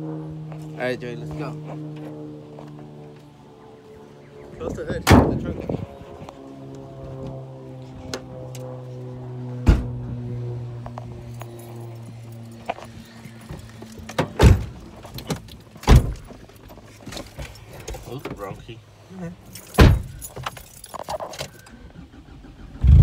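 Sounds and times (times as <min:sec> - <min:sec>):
low droning tone: 0:00.0 - 0:14.0
car door banging: 0:09.6 - 0:10.0, 0:14.1 - 0:14.8, 0:19.8 - 0:20.2.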